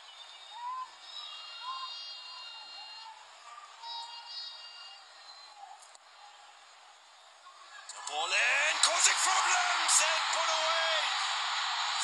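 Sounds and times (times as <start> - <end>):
distant voices and shouts: 7.6 - 12.0.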